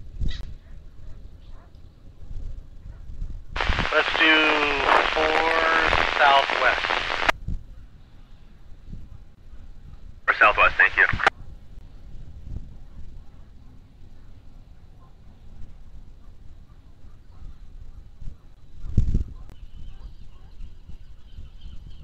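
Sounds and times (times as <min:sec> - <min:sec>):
person speaking over radio: 0:03.6 - 0:07.3, 0:10.3 - 0:11.3
radio hiss: 0:03.6 - 0:07.3, 0:10.3 - 0:11.3.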